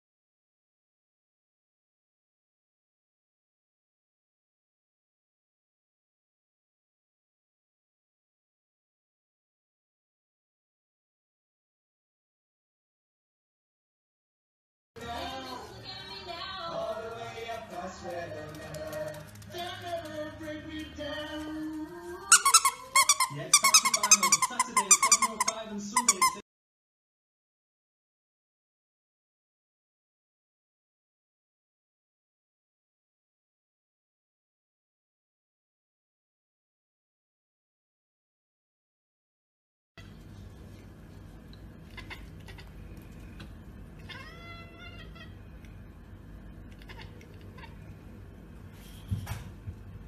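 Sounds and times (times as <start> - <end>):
squeaky toy squeaking: 22.3 - 26.4
steady low hum: 40.0 - 50.0
cat meowing: 41.9 - 42.8, 44.0 - 45.5, 46.7 - 47.9.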